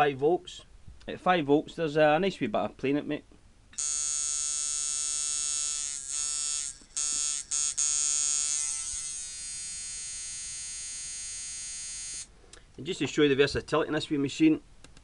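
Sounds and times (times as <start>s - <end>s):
tattoo machine buzzing: 3.8s - 12.3s.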